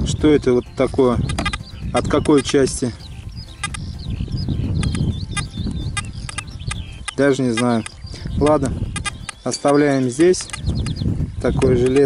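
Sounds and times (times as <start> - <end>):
bird chirps: 0.0 - 12.0
bird warbling song: 0.0 - 12.0
wind buffeting microphone: 0.0 - 12.0.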